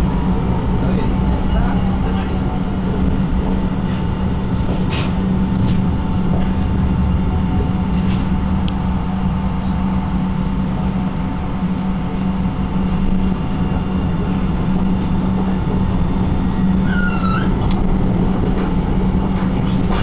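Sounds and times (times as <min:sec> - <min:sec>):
tram rumbling: 0:00.0 - 0:20.0.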